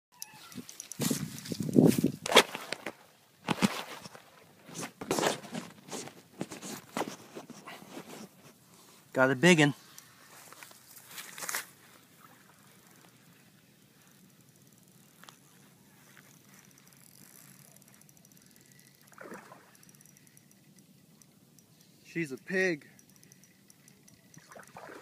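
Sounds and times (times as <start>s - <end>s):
rustling and handling noise: 0.2s - 9.1s, 9.8s - 12.1s
scrape: 4.7s - 8.3s
fine rapid ticking: 16.4s - 24.8s.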